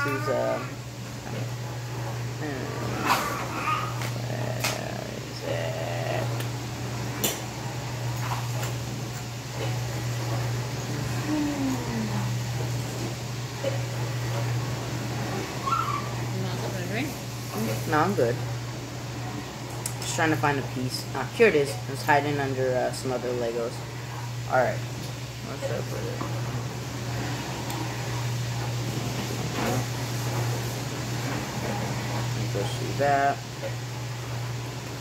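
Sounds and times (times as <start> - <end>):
appliance humming: 0.0 - 35.0.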